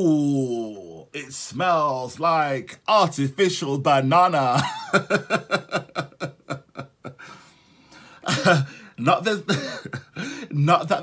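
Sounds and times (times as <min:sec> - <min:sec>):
man laughing: 0:04.4 - 0:07.4, 0:08.2 - 0:08.8, 0:09.4 - 0:10.8
faint breath: 0:07.2 - 0:09.0.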